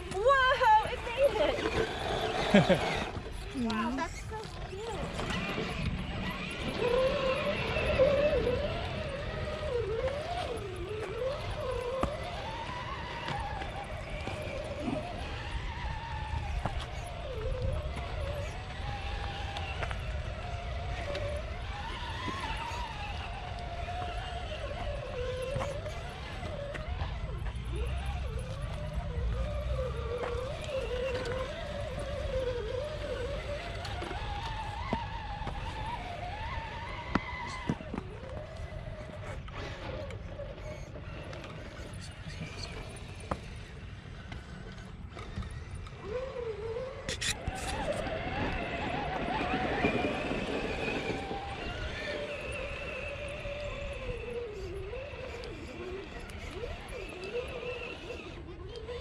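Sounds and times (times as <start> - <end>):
electric motor whining: 0.0 - 59.0.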